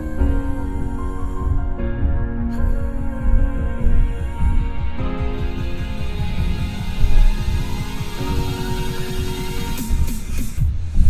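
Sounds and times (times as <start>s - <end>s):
held synth notes: 0.0s - 10.4s
electronic music in car: 0.0s - 11.0s
pulsing bass: 0.0s - 11.0s.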